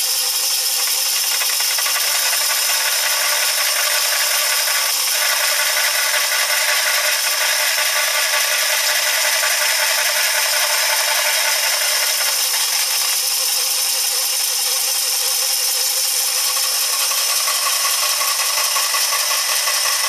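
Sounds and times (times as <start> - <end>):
bandsaw cutting wood: 0.7 - 20.0.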